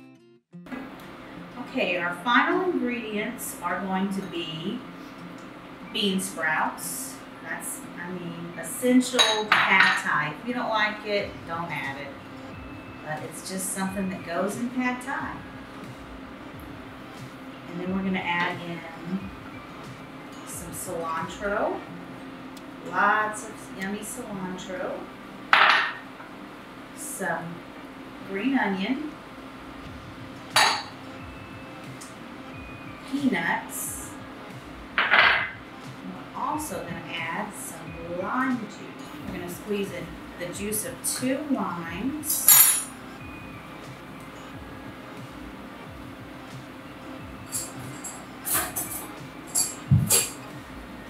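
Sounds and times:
kitchenware clattering on hard surface: 0:25.6 - 0:26.0, 0:35.0 - 0:35.6
knife and fork clinking: 0:47.5 - 0:50.4.

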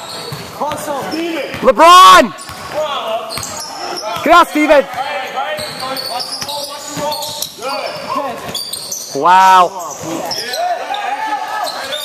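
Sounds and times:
basketball play on court: 0:00.0 - 0:12.0
voices in echoing gym: 0:00.0 - 0:12.0.

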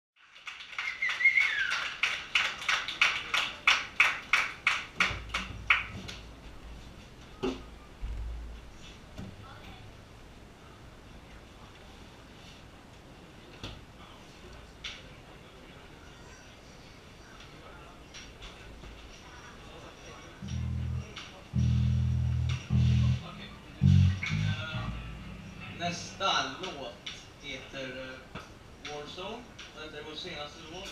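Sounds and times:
audience clapping in rhythm: 0:00.2 - 0:06.0
whistle: 0:00.8 - 0:01.8
electric bass guitar notes: 0:20.4 - 0:26.5
low amplifier hum: 0:20.4 - 0:27.3.

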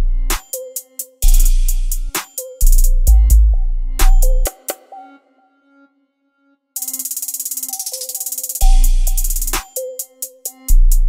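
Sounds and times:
hip hop beat: 0:00.0 - 0:05.8, 0:06.8 - 0:11.0
rapid hi-hat roll: 0:00.3 - 0:04.8, 0:06.8 - 0:11.0
heavy bass and kick drum: 0:01.2 - 0:04.5, 0:08.6 - 0:09.7, 0:10.6 - 0:11.0.

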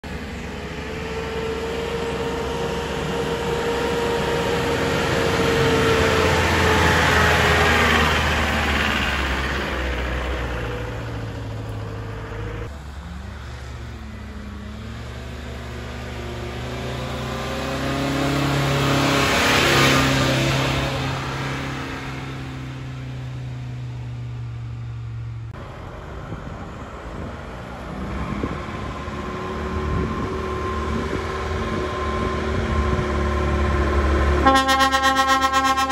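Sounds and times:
van engines climbing: 0:00.0 - 0:35.9.

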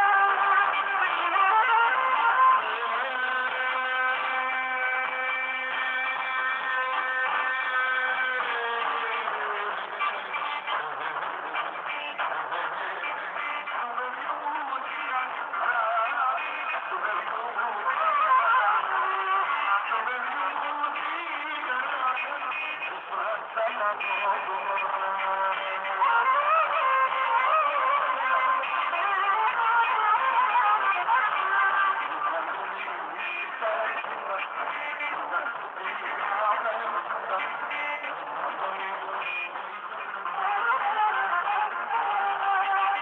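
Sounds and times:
man singing into microphone: 0:00.0 - 0:43.0.

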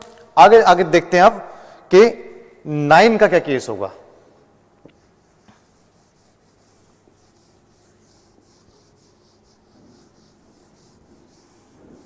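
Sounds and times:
eraser wiping whiteboard: 0:04.9 - 0:12.0.

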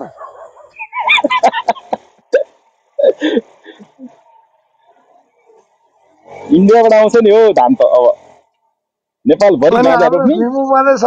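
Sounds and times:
choppy voice over voice chat: 0:09.3 - 0:11.0.

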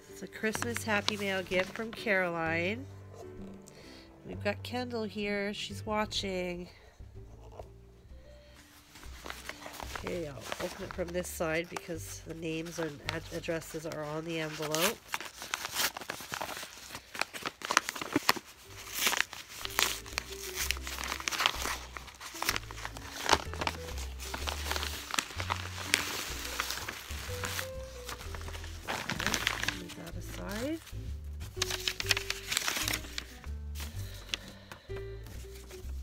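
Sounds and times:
paper envelope crinkling: 0:00.0 - 0:02.4, 0:08.4 - 0:36.0
background music: 0:00.0 - 0:36.0.

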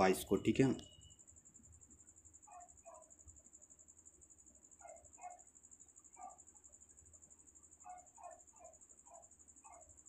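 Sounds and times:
cricket trill: 0:00.0 - 0:10.0
faint double chirps: 0:00.4 - 0:01.4.

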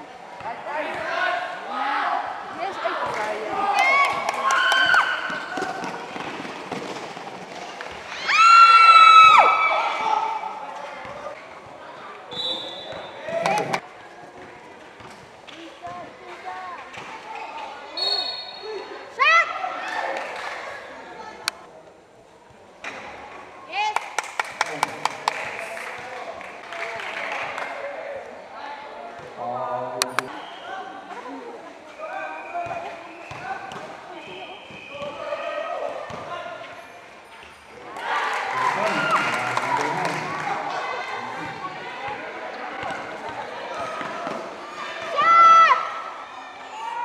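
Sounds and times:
basketball bouncing on court: 0:32.6 - 0:33.9, 0:36.1 - 0:36.3.

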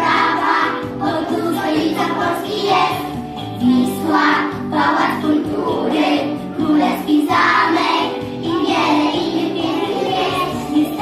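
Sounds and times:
children singing in chorus: 0:00.0 - 0:11.0.

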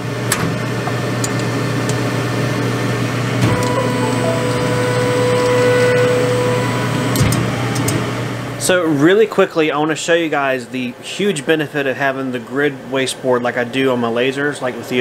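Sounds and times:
fan and engravers humming: 0:00.0 - 0:15.0.

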